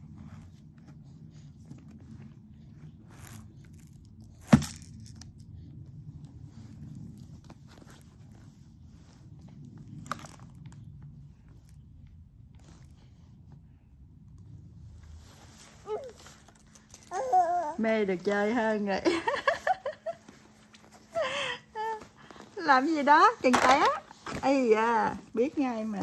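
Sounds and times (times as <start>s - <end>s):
baby crawling over blankets: 15.1s - 26.0s.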